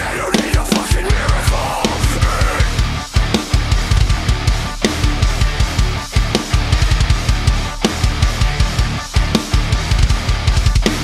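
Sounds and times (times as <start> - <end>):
heavy rock song: 0.0 - 11.0
rapid bass drum strokes: 0.0 - 11.0.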